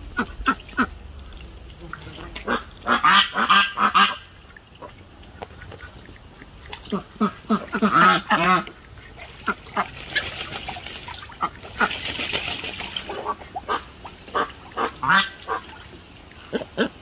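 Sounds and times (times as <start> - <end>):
duck splashing in water: 0.0 - 16.9.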